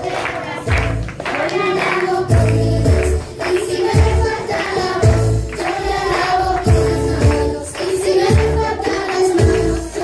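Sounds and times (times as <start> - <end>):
amplified music: 0.0 - 10.0
group singing worship song: 0.0 - 10.0
hand clapping: 0.0 - 10.0.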